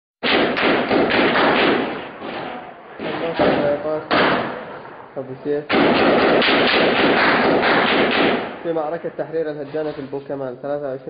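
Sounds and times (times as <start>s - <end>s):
gunfire crackling: 0.2s - 9.5s.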